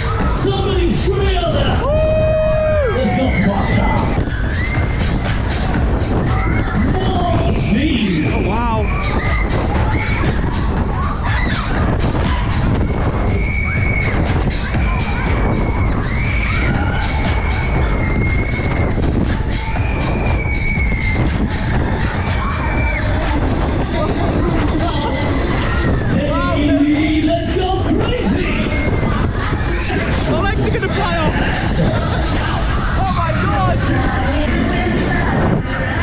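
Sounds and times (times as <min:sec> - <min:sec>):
fairground music: 0:00.0 - 0:36.0
wind buffeting microphone: 0:00.0 - 0:36.0
riders yelling and whooping: 0:01.1 - 0:05.0.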